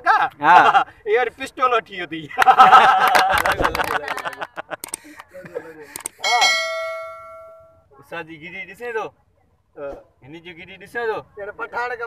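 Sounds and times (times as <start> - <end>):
bright bell strike: 6.2 - 7.8.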